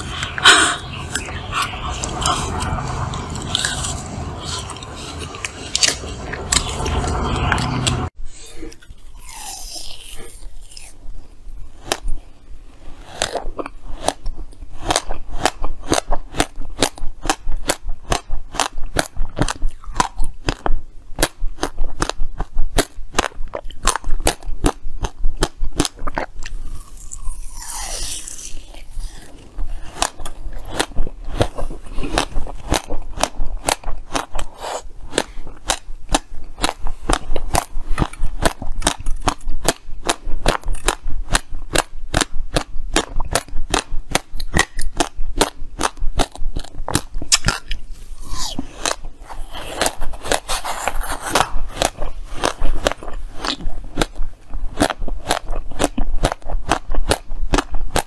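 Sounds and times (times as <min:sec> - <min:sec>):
ice crunching being chewed: 0:14.8 - 0:58.0.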